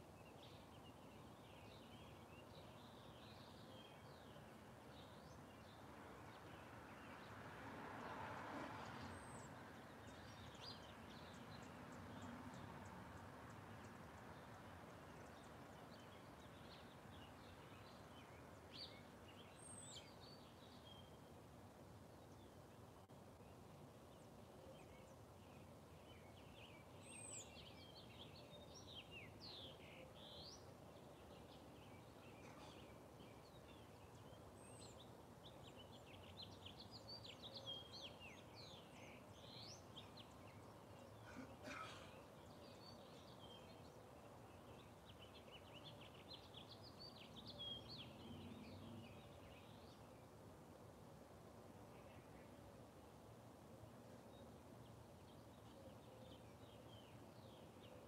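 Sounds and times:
outdoor background hiss: 0:00.0 - 0:58.0
birds chirping: 0:22.0 - 0:50.8.

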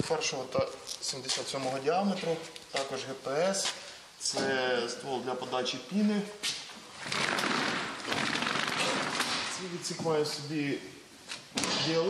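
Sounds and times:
roller shutter slats clattering: 0:07.0 - 0:09.6.

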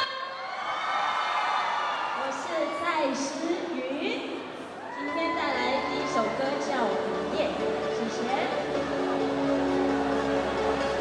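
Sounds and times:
audience cheering and screaming: 0:00.2 - 0:02.9, 0:04.7 - 0:07.2, 0:08.6 - 0:11.0.

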